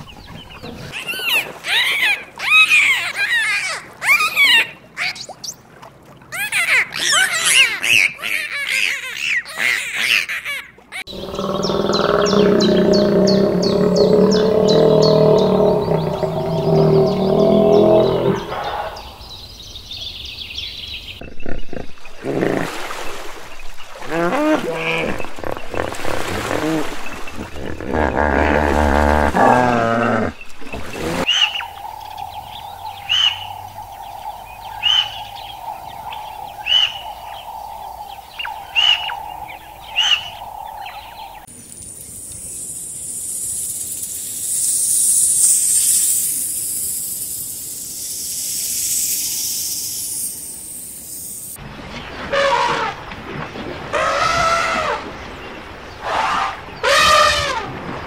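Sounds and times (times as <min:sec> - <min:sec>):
long low animal call: 0:11.0 - 0:18.9
grunting and honking calls: 0:11.0 - 0:19.0.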